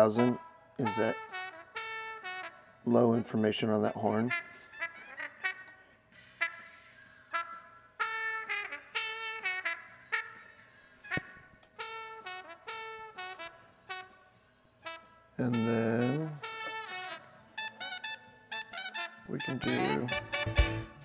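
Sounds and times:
trumpet playing short notes: 0.0 - 5.8, 11.0 - 14.2, 14.8 - 21.0.

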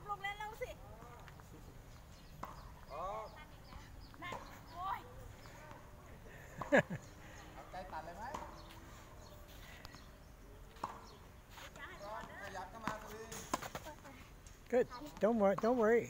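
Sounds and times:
faint distant voices: 0.0 - 16.0
tennis ball bouncing on court: 2.3 - 4.6, 7.9 - 8.7, 10.7 - 14.1.

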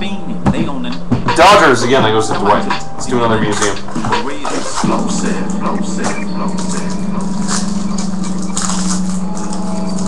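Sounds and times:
steady low hum: 0.0 - 10.0
foil wrapper crinkling and tearing: 6.6 - 10.0.

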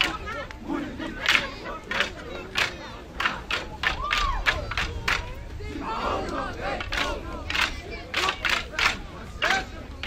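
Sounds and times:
wooden sticks striking together: 1.2 - 5.4, 6.3 - 9.7.

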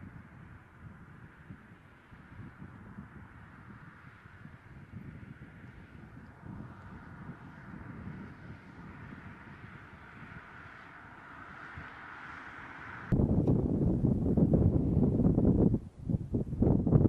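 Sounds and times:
wind rumble on microphone: 0.0 - 17.0.

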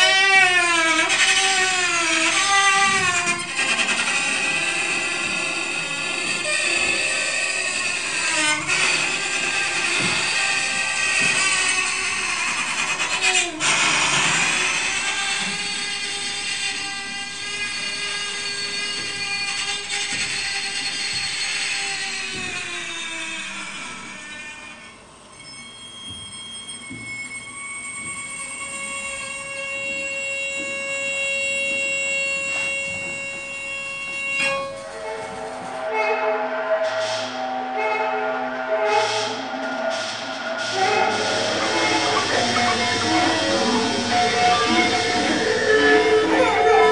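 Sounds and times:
bowed amplified wire drones: 0.0 - 25.6, 26.8 - 46.9
steady high tones: 23.9 - 46.9.

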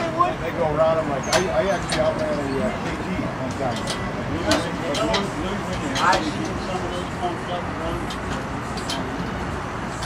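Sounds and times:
people talking: 0.0 - 8.4.

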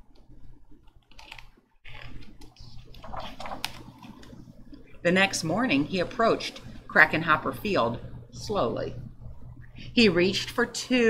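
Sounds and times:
low steady hum: 0.0 - 11.0
book pages turning: 0.8 - 4.4
paper rustling with light clicks: 0.8 - 4.4.

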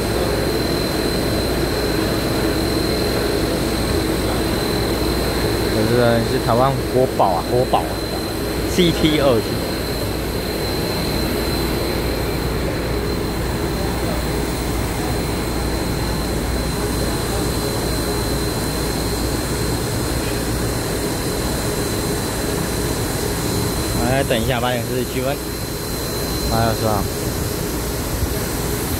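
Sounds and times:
thin high whine: 0.0 - 28.9.

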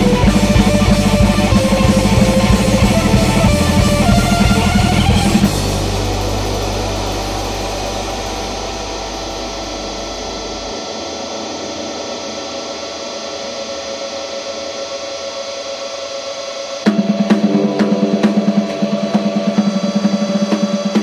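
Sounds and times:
low bass drone: 0.0 - 14.9
steady ringing tones: 0.0 - 16.8
distorted electric guitar feedback: 0.0 - 21.0.

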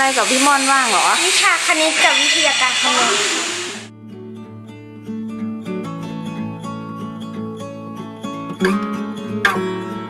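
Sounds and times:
loud rushing noise: 0.8 - 3.9
plucked guitar music: 3.9 - 10.0.

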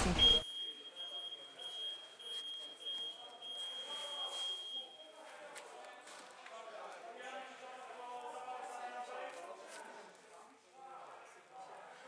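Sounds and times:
high-pitched electronic tone: 0.0 - 0.4
muffled background voices: 0.0 - 12.0.

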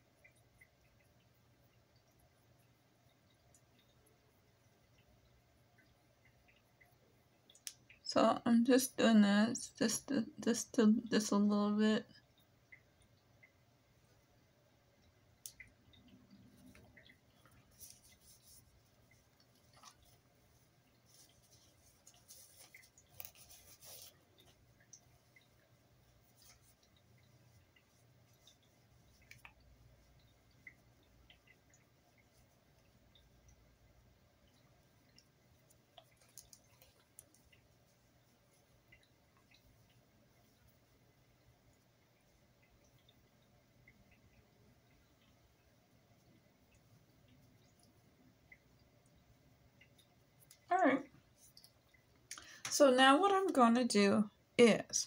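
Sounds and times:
faint rustles and small clicks: 0.0 - 8.7, 11.9 - 55.0.

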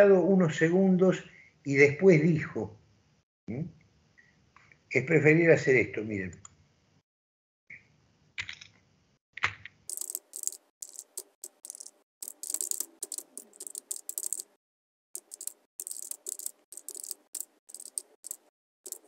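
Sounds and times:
computer keyboard typing: 9.4 - 14.6, 15.2 - 19.0.

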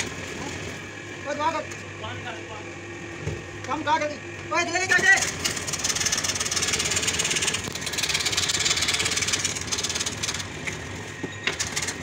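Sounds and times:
scroll saw cutting wood: 5.0 - 12.0.

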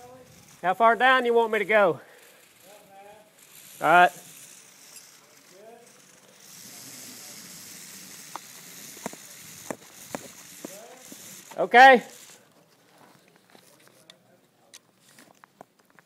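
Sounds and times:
rope hissing through descent device: 0.0 - 14.0.

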